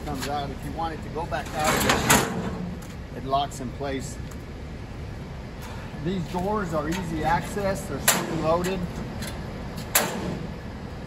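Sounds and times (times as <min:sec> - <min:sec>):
metal gate swinging shut: 0:01.5 - 0:02.7, 0:08.0 - 0:10.5
gate latch click: 0:09.2 - 0:10.5.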